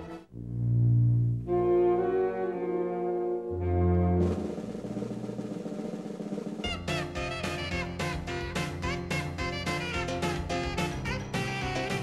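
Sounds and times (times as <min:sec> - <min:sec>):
brass band playing held chords: 0:00.0 - 0:00.5, 0:01.4 - 0:12.0
drum roll: 0:03.6 - 0:12.0
guitar-led music: 0:06.6 - 0:12.0.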